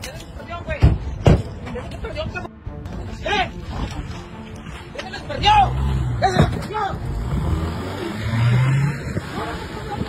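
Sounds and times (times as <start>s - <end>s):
car engine revving: 5.4s - 10.0s.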